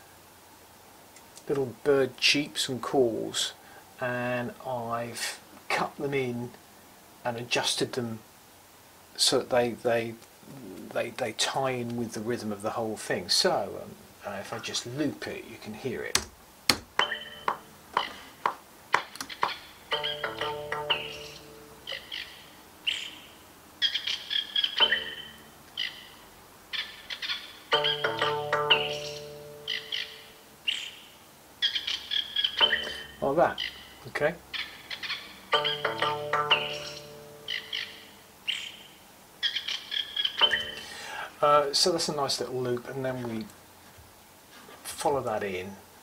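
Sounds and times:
songbird chirps edited to beat: 17.0s - 18.3s, 19.0s - 41.0s.

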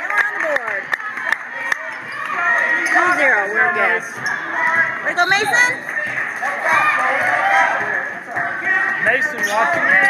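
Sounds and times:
spectators' voices echoing: 0.0s - 10.0s.

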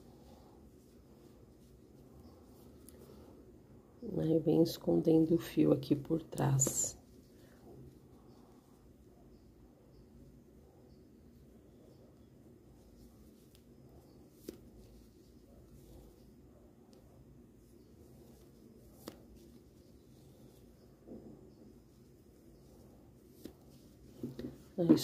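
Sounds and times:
soft handling of crochet hook: 0.0s - 25.0s.

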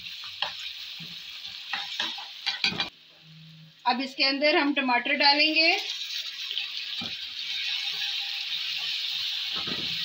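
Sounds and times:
onions sizzling in hot oil: 0.0s - 10.0s.

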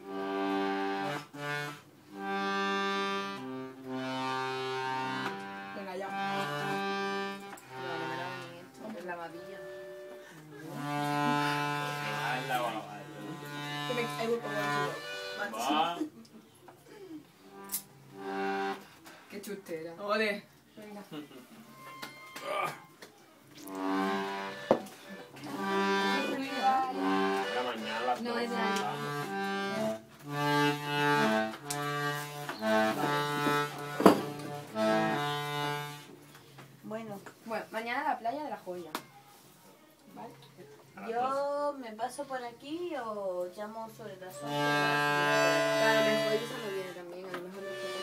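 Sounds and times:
accordion playing chords: 0.0s - 16.1s, 17.3s - 19.4s, 21.6s - 36.4s, 43.9s - 48.0s.

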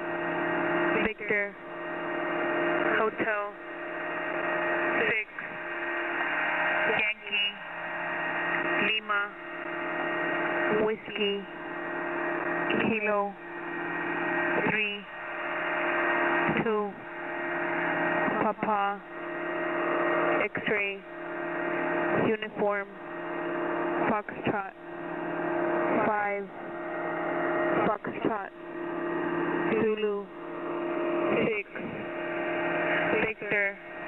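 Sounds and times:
pulsing radio static hiss: 0.0s - 34.0s.

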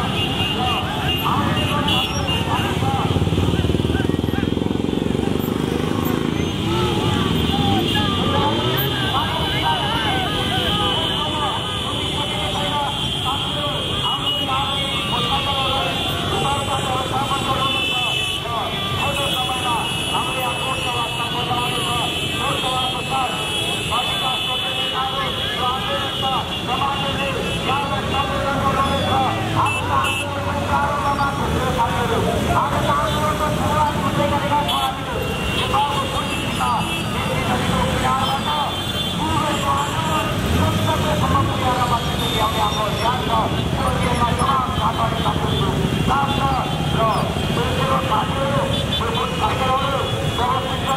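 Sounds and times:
motorcycle engines revving: 0.0s - 50.9s.

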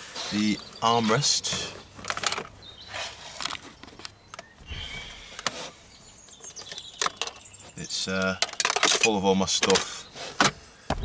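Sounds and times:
plastic clicks and knocks: 6.5s - 7.4s, 8.2s - 11.0s.

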